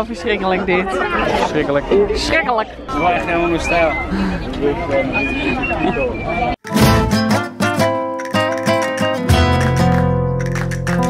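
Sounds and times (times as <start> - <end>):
crowd chatter: 0.0 - 7.0
acoustic guitar music: 6.6 - 11.0.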